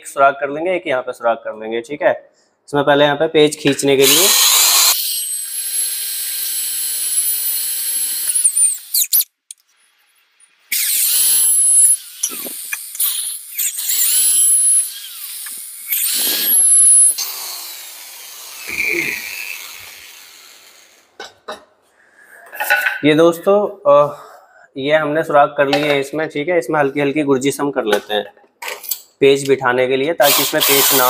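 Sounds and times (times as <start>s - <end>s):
electric drill boring into wood: 4.0s - 9.2s, 10.7s - 21.1s, 30.2s - 31.0s.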